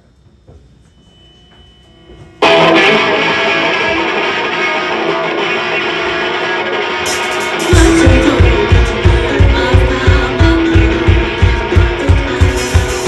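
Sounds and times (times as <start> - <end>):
electric guitars playing chords: 2.4 - 13.0.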